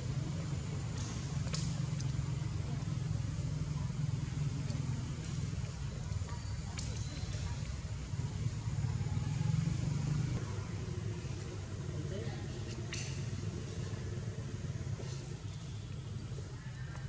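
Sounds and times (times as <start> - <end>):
faint indistinct voices: 0.0 - 17.0.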